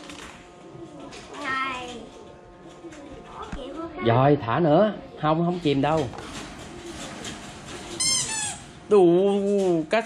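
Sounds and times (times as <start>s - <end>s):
rubber toy squeaking: 8.0s - 8.6s.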